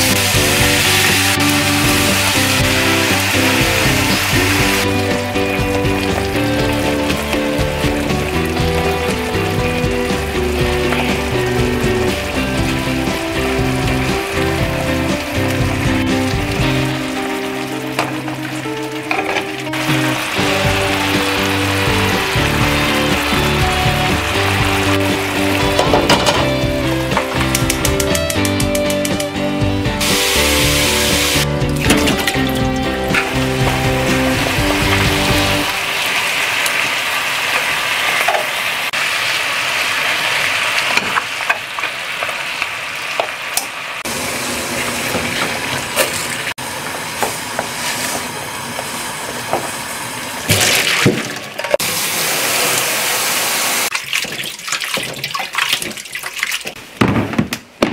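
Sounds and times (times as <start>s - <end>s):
meat sizzling in a frying pan: 0.0s - 27.9s, 30.0s - 31.5s, 33.0s - 45.2s
background music: 0.0s - 36.2s
metal tongs clicking: 27.5s - 29.3s.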